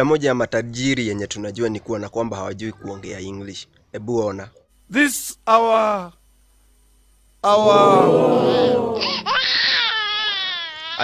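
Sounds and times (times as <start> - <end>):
high-pitched crying wail: 7.5 - 11.0.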